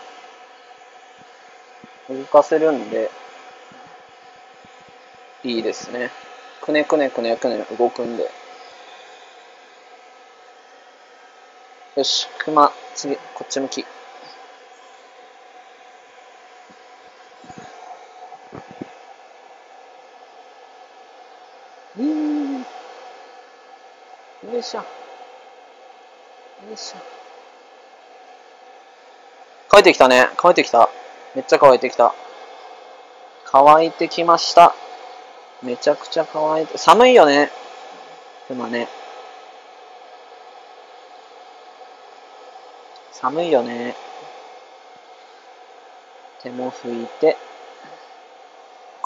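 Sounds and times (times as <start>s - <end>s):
pet dryer blowing air: 0.0s - 49.0s.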